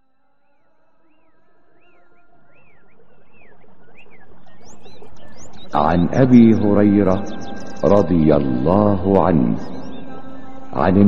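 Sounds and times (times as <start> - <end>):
short whistled calls: 1.1 - 5.8, 9.4 - 10.8
held drone of tones: 1.8 - 11.0.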